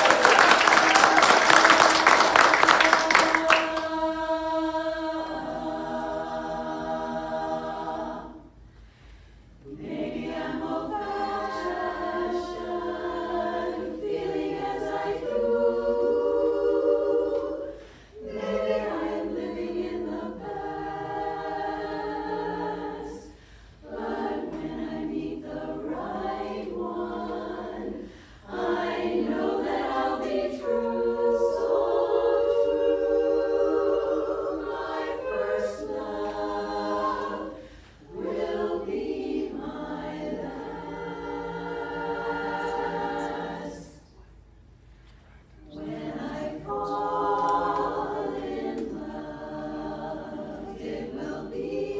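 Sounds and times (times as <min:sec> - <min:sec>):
women's chorus singing a cappella: 0:00.0 - 0:08.7, 0:09.6 - 0:44.3, 0:45.6 - 0:51.9.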